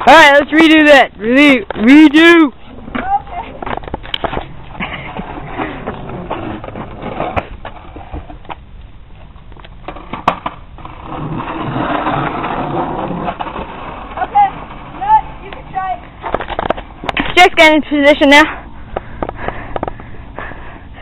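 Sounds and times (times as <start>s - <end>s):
skateboard clacking on ground: 0.0s - 17.8s
skateboard wheels rolling on asphalt: 0.0s - 21.0s.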